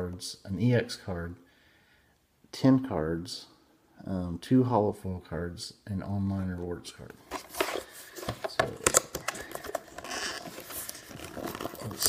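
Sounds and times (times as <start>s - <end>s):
cardboard scratchy rasp: 9.2s - 12.0s.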